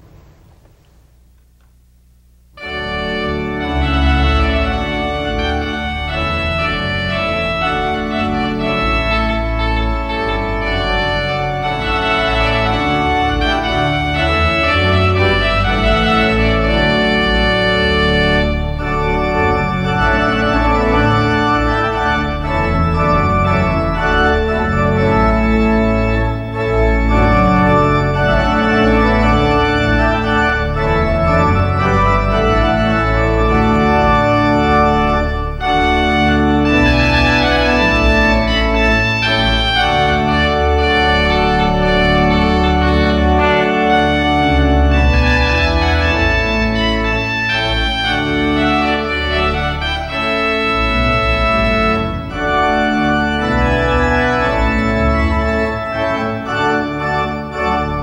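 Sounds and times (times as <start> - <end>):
pipe organ chords: 0.0 - 58.0.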